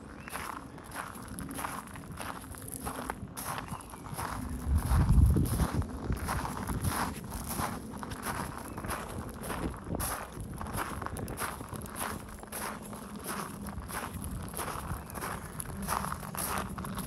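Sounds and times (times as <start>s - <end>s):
footsteps crunching on gravel: 0.0s - 17.0s.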